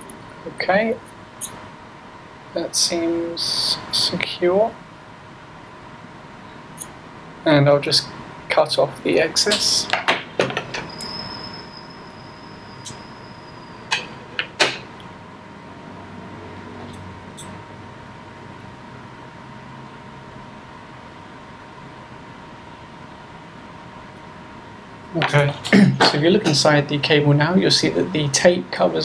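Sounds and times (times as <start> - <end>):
quiet steady hum: 0.0 - 29.0.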